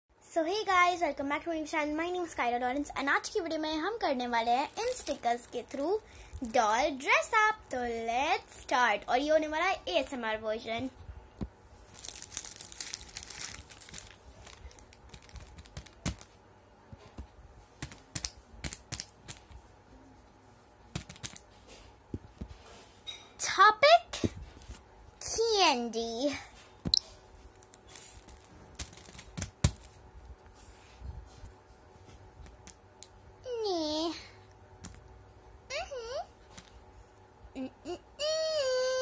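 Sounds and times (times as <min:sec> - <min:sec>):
plastic packaging crinkling: 0:04.6 - 0:06.6, 0:11.8 - 0:16.4, 0:17.8 - 0:19.6, 0:21.0 - 0:21.6, 0:27.5 - 0:30.0
stickers being peeled: 0:11.9 - 0:16.4, 0:17.8 - 0:19.6, 0:20.9 - 0:21.4, 0:27.5 - 0:30.0.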